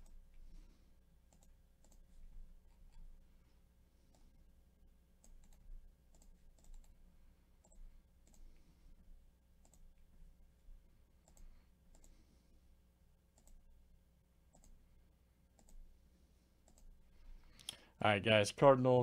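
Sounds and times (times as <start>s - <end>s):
low steady hum: 0.0s - 19.0s
computer mouse clicks: 1.3s - 2.1s, 5.2s - 7.0s, 7.6s - 8.6s, 9.6s - 10.0s, 11.2s - 12.2s, 13.3s - 13.7s, 14.5s - 14.8s, 15.5s - 15.9s, 16.6s - 17.8s.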